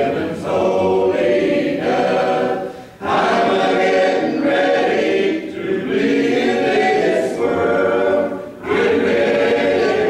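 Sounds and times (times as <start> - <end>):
congregation singing: 0.0 - 10.0.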